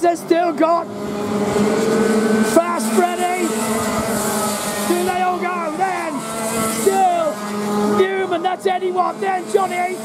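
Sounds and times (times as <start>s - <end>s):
commentator speaking: 0.0s - 1.0s, 2.4s - 10.0s
racing kart engines: 0.0s - 10.0s.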